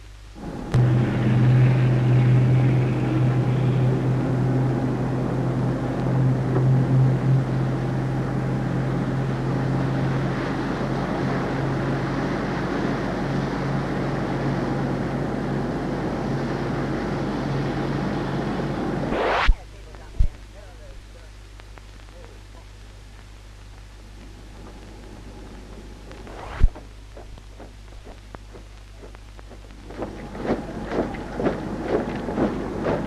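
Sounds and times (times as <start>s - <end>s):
boat engine droning: 0.4s - 21.2s, 28.1s - 33.0s.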